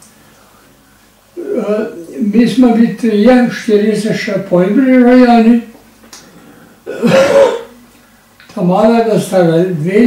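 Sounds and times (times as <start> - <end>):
elderly man clearing throat: 1.4 - 2.0, 6.8 - 7.8.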